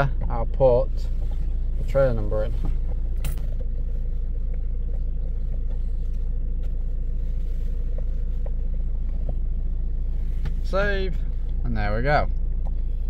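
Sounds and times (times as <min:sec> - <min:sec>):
van engine idling: 0:00.0 - 0:13.0.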